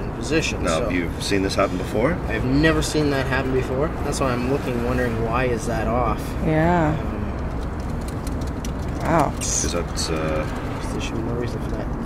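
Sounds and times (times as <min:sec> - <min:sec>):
low motor vehicle rumble: 0:00.0 - 0:12.0.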